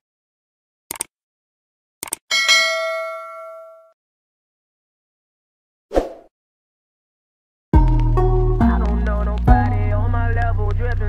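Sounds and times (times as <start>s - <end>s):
notification bell ding: 2.3s - 4.0s.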